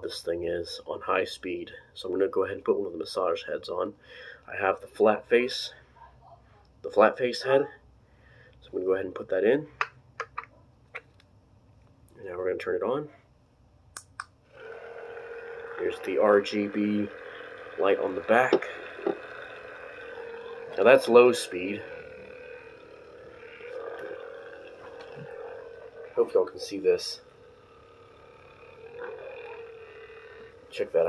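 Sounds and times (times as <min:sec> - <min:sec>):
massage gun motor hum: 0:14.4 - 0:31.0.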